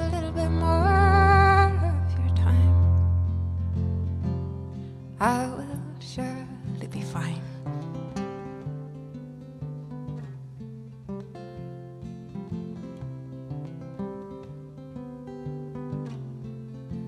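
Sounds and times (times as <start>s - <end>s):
acoustic guitar playing: 0.0s - 17.0s.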